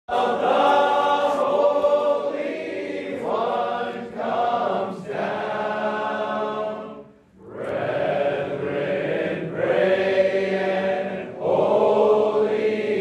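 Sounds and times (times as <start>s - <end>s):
choir singing: 0.1s - 13.0s.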